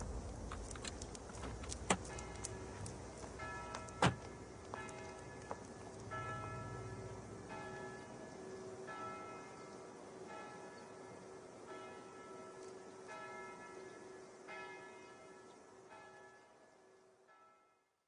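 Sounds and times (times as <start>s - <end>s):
church bell tolling: 2.1s - 16.6s.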